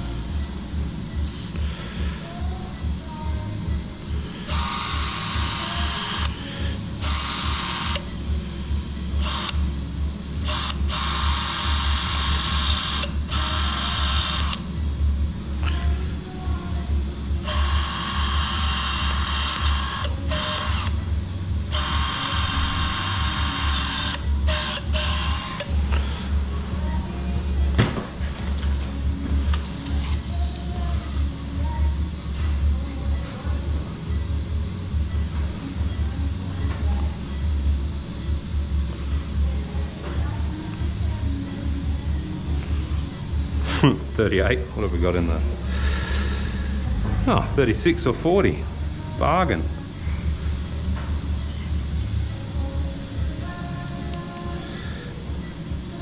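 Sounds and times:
low pulsing hum: 0:00.0 - 0:56.0
surgical drill drilling bone: 0:04.5 - 0:08.1, 0:09.2 - 0:09.6, 0:10.4 - 0:14.6, 0:17.4 - 0:21.0, 0:21.7 - 0:25.7.

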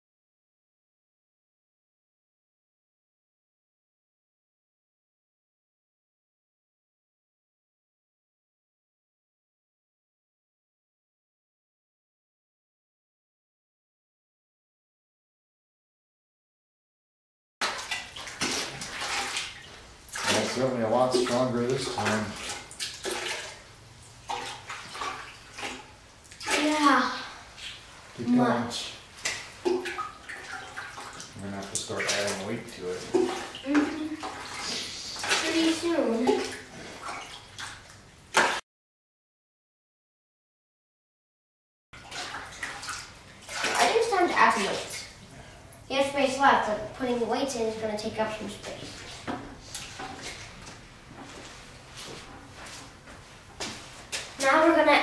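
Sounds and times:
water pouring into plastic bucket: 0:17.6 - 0:23.6
water sloshing in a plastic bucket: 0:17.6 - 0:38.6, 0:42.0 - 0:55.0.

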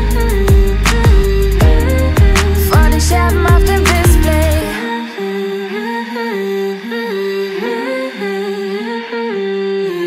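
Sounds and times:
wordless hummed melody: 0:00.0 - 0:10.0.

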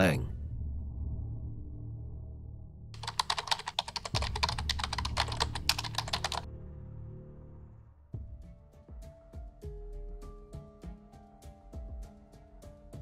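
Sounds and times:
low droning music: 0:00.0 - 0:13.0
rapid sharp clicks: 0:03.0 - 0:06.4.

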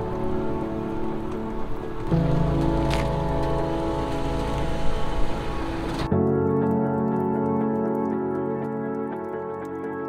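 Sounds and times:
sustained music chords: 0:00.0 - 0:07.2.

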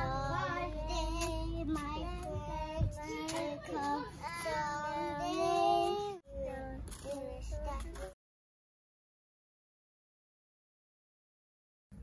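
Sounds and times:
child singing held notes: 0:00.0 - 0:08.2.

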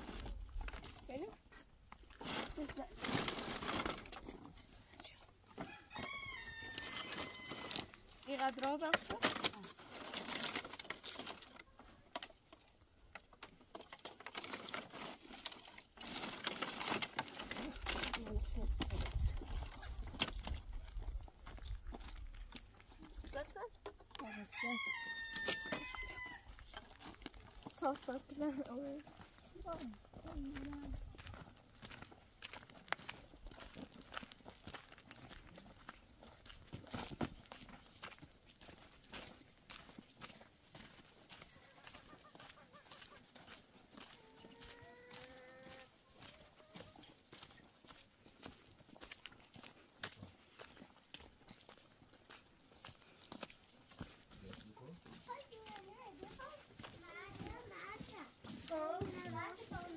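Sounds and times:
firewood branches clattering: 0:02.1 - 0:04.6, 0:07.1 - 0:20.8
rooster crowing: 0:05.6 - 0:07.9, 0:24.2 - 0:26.5.

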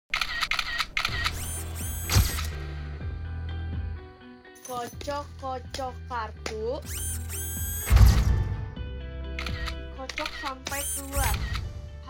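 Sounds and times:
camera shutter clicks: 0:00.1 - 0:02.6, 0:09.4 - 0:11.7.

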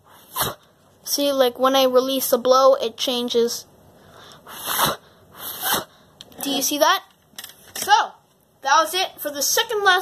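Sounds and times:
breath puffs on microphone: 0:04.0 - 0:06.1.

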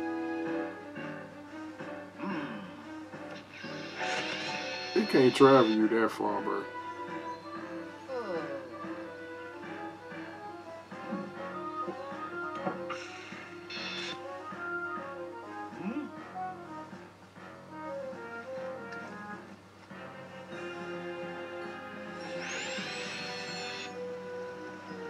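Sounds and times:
cartoon music melody: 0:00.0 - 0:17.0, 0:20.0 - 0:25.0.

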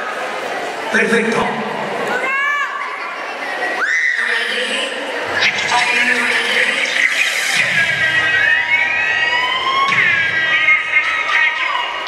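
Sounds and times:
siren-like rising sweep: 0:05.3 - 0:11.2.

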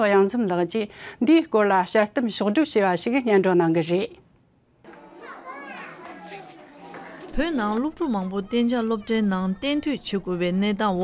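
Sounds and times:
young children chattering: 0:04.9 - 0:11.0.

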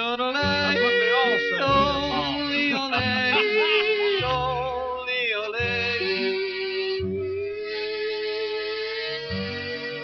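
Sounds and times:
string band accompaniment: 0:00.0 - 0:10.0
person yodeling: 0:00.4 - 0:05.1
plucked bass notes: 0:00.4 - 0:07.8.

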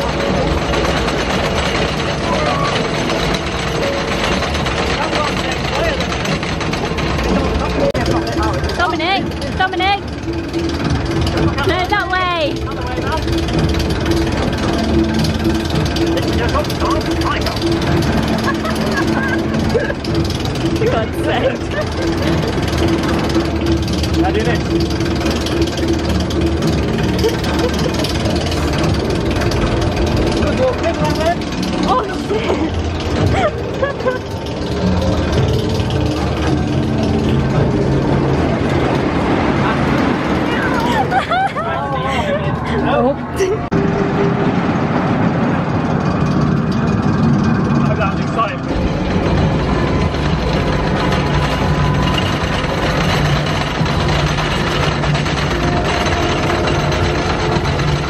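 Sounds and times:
chatter of many people: 0:00.0 - 0:25.1
steady low hum: 0:00.0 - 0:58.0
music: 0:03.7 - 0:41.2, 0:48.4 - 0:58.0.

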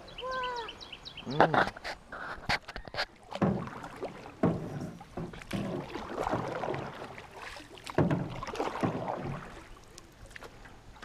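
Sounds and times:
paddles swishing through water: 0:00.0 - 0:11.0
sharp knocks: 0:03.3 - 0:03.8, 0:04.4 - 0:06.6, 0:07.9 - 0:09.1.

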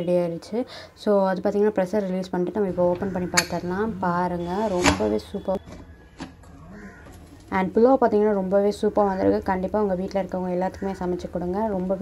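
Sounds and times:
person speaking: 0:01.6 - 0:05.6, 0:07.5 - 0:12.0.

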